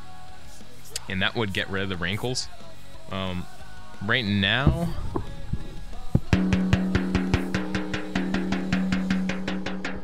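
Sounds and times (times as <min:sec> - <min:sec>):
snare drum head tapped by hand: 0:04.6 - 0:10.0.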